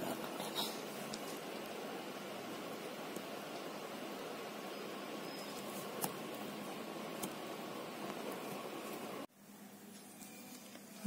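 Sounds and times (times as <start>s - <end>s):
faint hum: 0.0s - 11.0s
room noise hiss: 0.0s - 11.0s.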